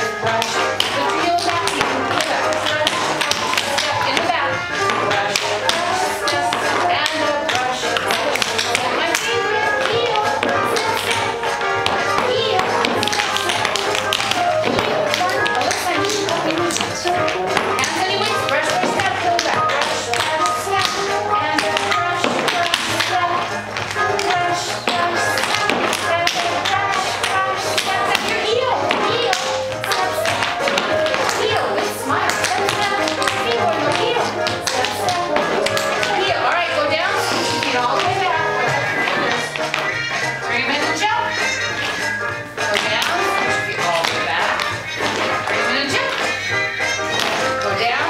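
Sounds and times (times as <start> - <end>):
recorded music: 0.0 - 48.0
tap shoes on wooden floor: 0.0 - 48.0.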